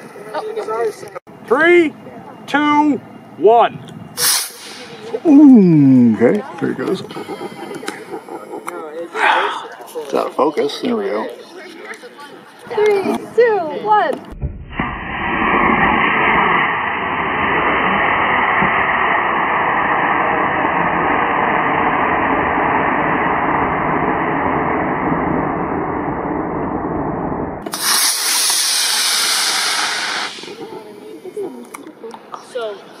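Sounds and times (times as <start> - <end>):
model rocket motor hissing: 27.6 - 30.8.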